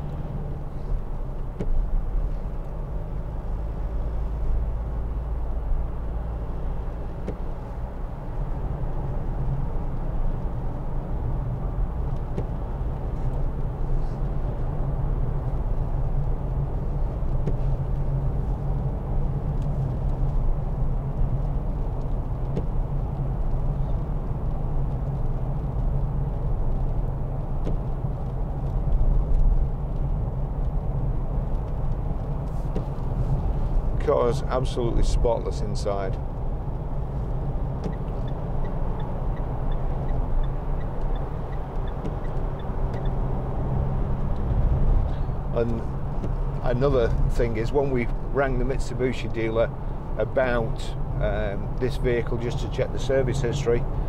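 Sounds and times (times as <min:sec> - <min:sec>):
diesel engine drone: 0:00.0 - 0:54.0
tyre and road noise: 0:00.0 - 0:54.0.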